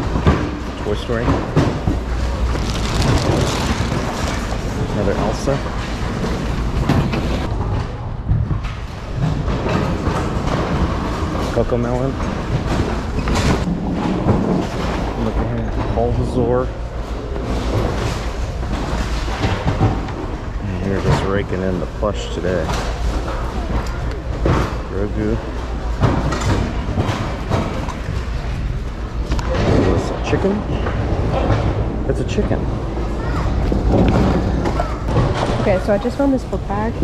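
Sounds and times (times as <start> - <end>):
steady low rumble: 1.8 - 10.1
plastic bag rustling: 2.0 - 6.4
plush toys rustling: 2.1 - 5.4.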